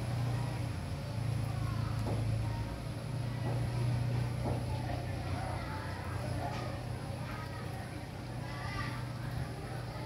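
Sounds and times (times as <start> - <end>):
faint voices: 0.0 - 10.0
low mechanical hum: 0.0 - 10.0.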